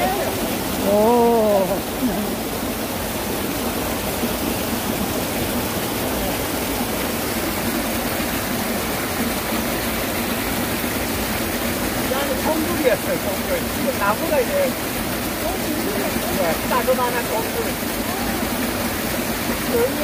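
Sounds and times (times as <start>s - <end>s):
stream rushing over rocks: 0.0s - 20.0s.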